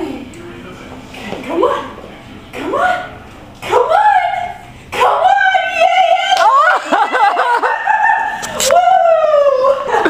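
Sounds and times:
long falling cry: 5.0s - 10.0s.

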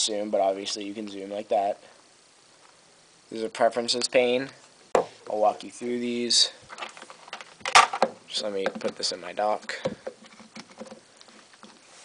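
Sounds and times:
light taps and handling noises: 6.7s - 11.9s.

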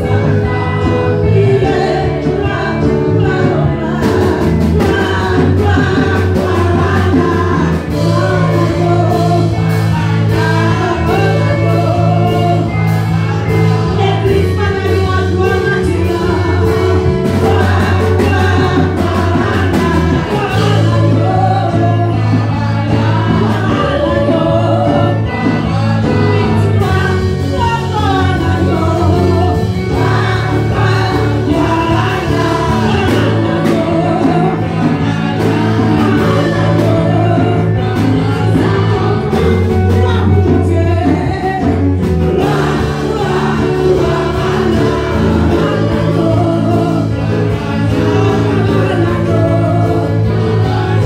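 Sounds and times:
backing singers: 0.0s - 51.0s
drum kit with cymbals: 0.0s - 51.0s
woman singing into a microphone: 0.0s - 51.0s.

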